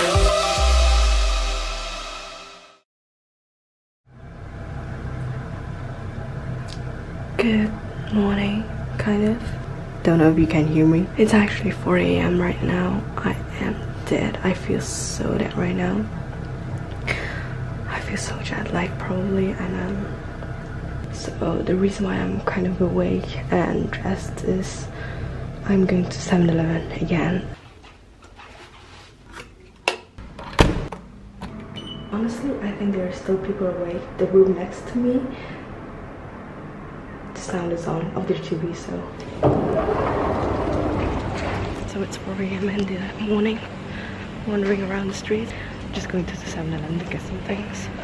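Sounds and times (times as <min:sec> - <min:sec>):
low room hum: 0:04.1 - 0:48.0
city street noise at night: 0:32.9 - 0:41.9.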